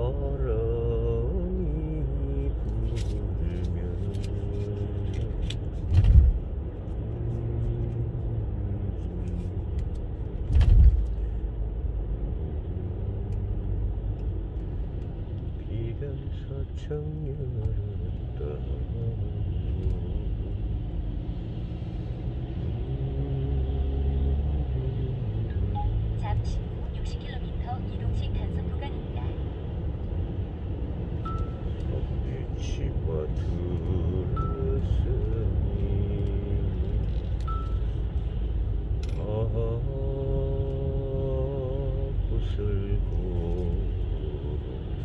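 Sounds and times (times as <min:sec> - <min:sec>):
car road and engine noise: 0:00.0 - 0:45.0.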